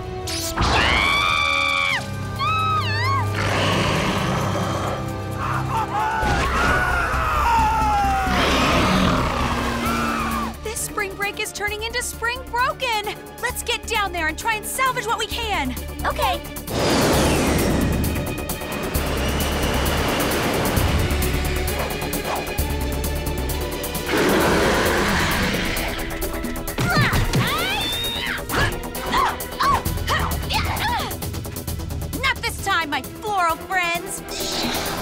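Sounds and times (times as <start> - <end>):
cartoon background music: 0.0 - 35.0
falling vocal cry: 5.4 - 10.5.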